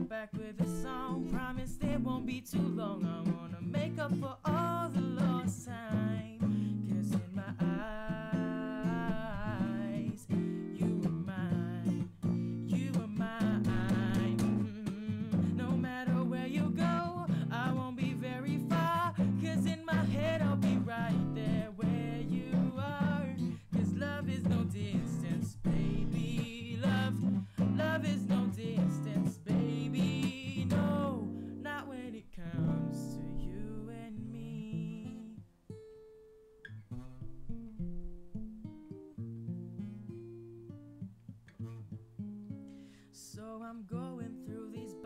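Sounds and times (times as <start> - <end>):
person singing: 0.0 - 35.4, 43.1 - 45.0
acoustic guitar playing chords: 0.0 - 45.0.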